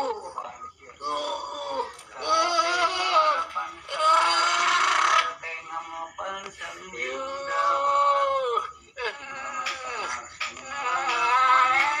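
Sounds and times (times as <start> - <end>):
person screaming: 1.1 - 5.2.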